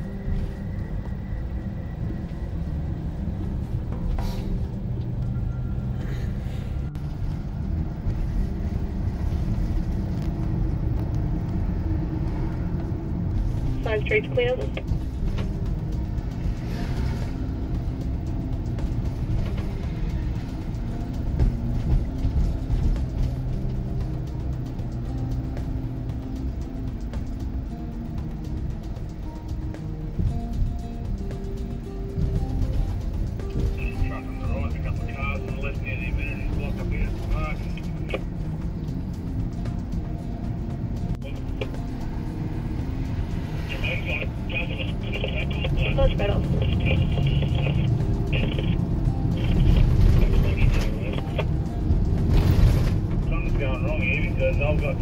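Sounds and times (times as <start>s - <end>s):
background music: 0.0s - 55.0s
car engine and road drone: 0.0s - 55.0s
two-way radio talk: 13.8s - 14.8s, 33.8s - 38.2s, 43.7s - 51.5s, 53.3s - 55.0s.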